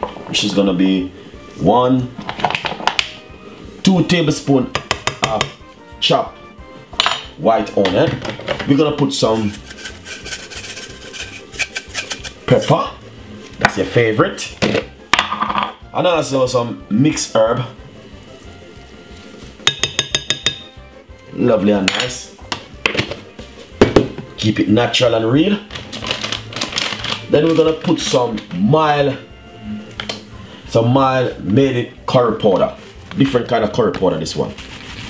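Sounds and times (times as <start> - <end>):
quiet background music: 0.0 - 35.0
kitchen utensils clicking: 9.4 - 12.7
spoon clinking against glass bowl: 19.7 - 20.8.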